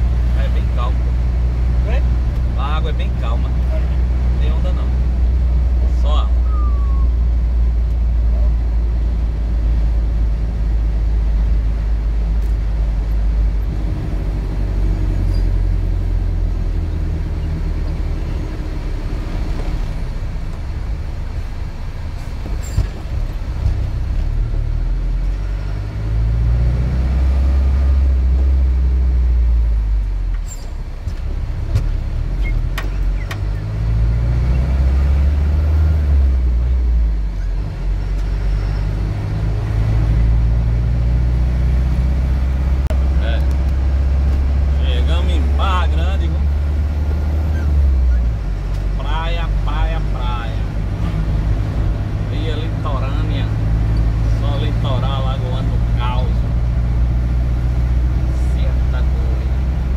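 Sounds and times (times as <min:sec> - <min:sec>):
vehicle engine accelerating: 0:00.0 - 0:59.9.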